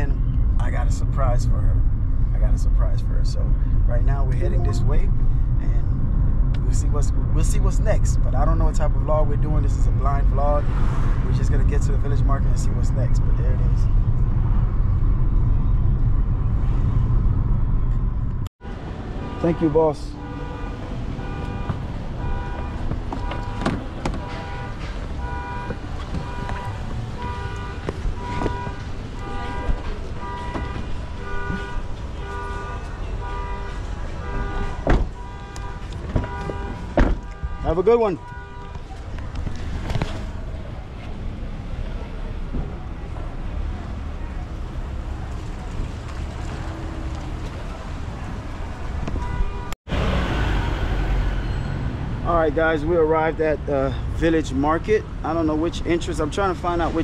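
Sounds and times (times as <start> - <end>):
vehicle traffic: 0.0 - 57.0
car door shutting: 22.8 - 26.7, 34.8 - 35.2, 36.0 - 37.4.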